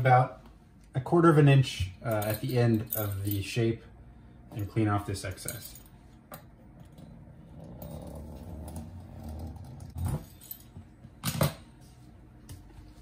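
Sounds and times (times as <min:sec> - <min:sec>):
pastry wheel rolling on dough: 0:06.8 - 0:10.2.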